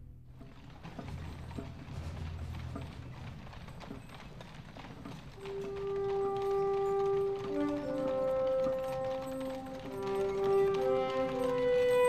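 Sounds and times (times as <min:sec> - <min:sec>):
hooves clip-clopping on pavement: 0:00.4 - 0:12.0.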